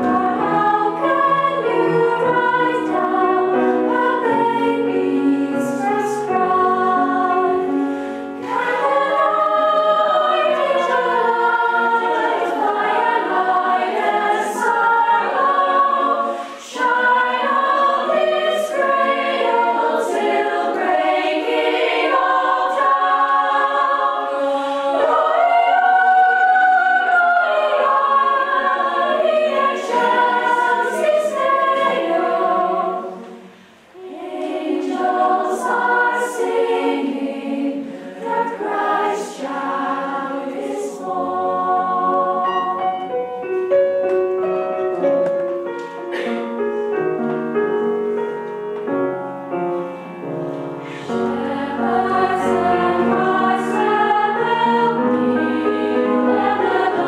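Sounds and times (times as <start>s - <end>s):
choir singing in harmony: 0.0s - 45.2s, 45.8s - 57.0s.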